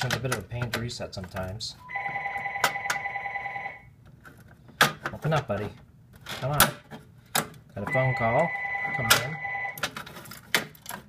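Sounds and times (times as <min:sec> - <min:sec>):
telephone ringing: 0:01.8 - 0:03.9, 0:07.9 - 0:09.8.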